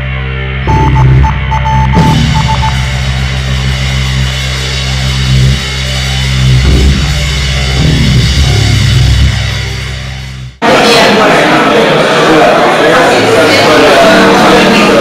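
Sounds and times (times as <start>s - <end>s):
heavy distorted band music: 0.0s - 10.9s
stuttering high tone: 0.7s - 10.4s.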